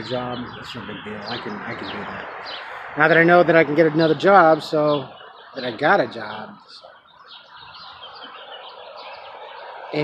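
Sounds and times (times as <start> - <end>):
birds chirping and twittering: 0.0 - 10.0.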